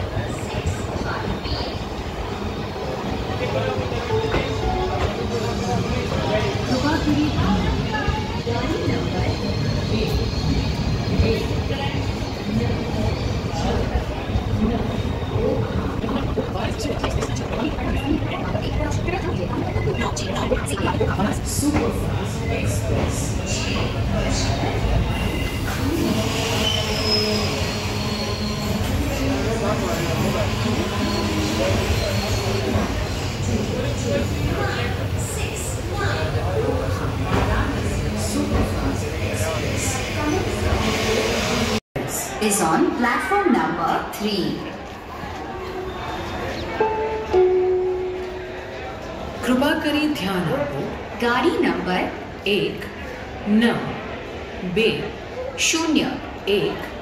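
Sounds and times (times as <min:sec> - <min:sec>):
train rumbling: 0:00.0 - 0:41.8
wheels squealing on rails: 0:01.4 - 0:19.9, 0:23.4 - 0:35.0.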